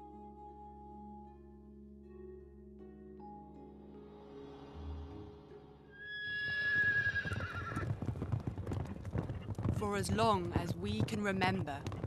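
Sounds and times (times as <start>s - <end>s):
low background music: 0.0s - 6.6s
horse whinnying: 6.0s - 8.0s
galloping hoofbeats: 6.4s - 12.0s.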